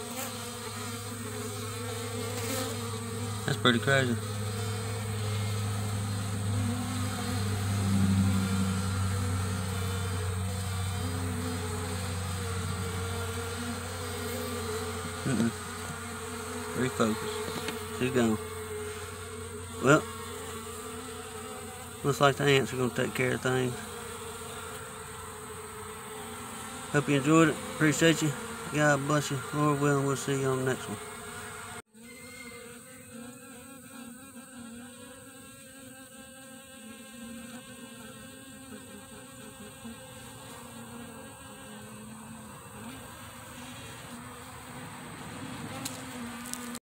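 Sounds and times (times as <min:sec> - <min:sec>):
honeybees buzzing: 0:00.0 - 0:46.8.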